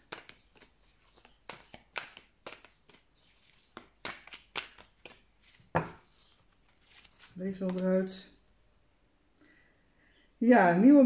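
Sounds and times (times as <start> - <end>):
tarot cards shuffling: 0.0 - 8.2.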